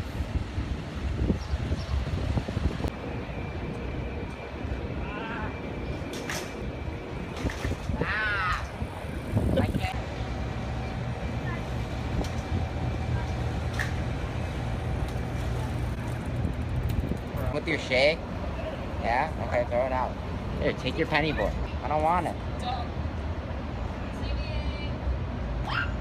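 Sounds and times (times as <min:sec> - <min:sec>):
passing vehicles rumble: 0:00.0 - 0:26.0.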